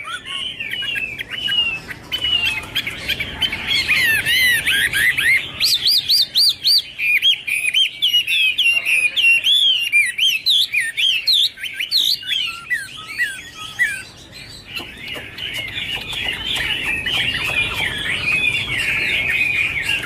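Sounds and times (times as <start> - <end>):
bird singing whistled notes: 0.0 - 20.0.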